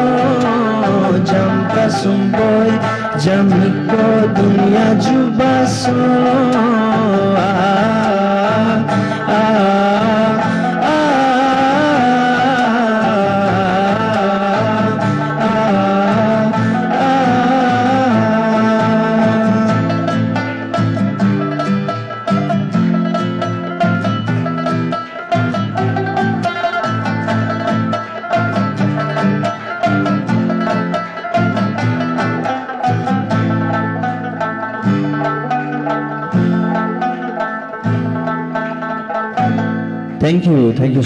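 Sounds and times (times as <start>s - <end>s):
acoustic guitar chords: 0.0s - 41.0s
plucked rabab notes: 0.0s - 41.0s.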